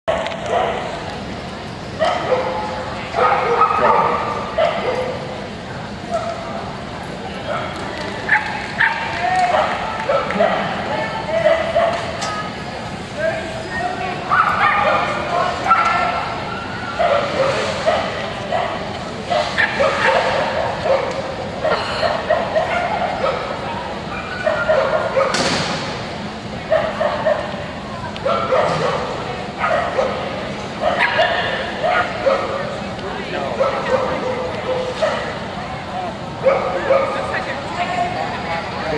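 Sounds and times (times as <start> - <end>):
dogs barking and yipping: 0.1 - 1.0, 2.0 - 5.3, 7.4 - 12.3, 14.2 - 25.4, 26.7 - 27.6, 28.2 - 32.7, 33.4 - 35.5, 36.4 - 37.3.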